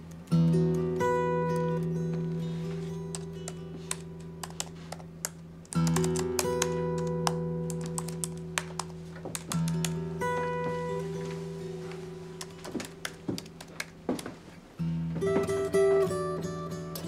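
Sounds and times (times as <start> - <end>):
computer keyboard typing: 5.8 - 10.0.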